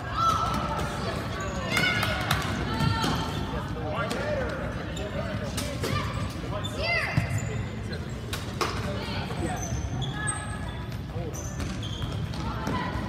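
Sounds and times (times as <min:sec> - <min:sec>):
sneakers squeaking on floor: 0:05.9 - 0:13.0.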